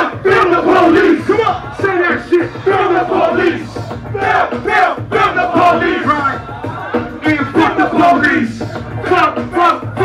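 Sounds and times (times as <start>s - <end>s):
bass-heavy beat: 0.0s - 10.0s
crowd noise: 0.0s - 10.0s
shouted rap vocals: 0.0s - 10.0s.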